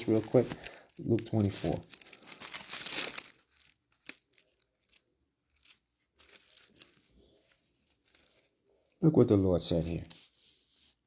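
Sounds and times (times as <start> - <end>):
book pages rustling: 0.0 - 9.0, 9.7 - 11.0.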